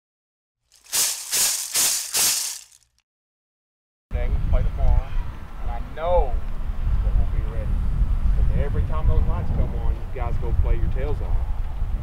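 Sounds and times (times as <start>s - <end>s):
rattle shaking: 0.7s - 2.9s.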